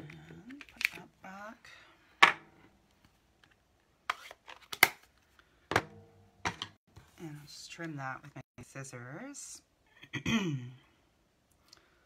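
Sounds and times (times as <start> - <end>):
plastic cases clacking: 0.0 - 1.0.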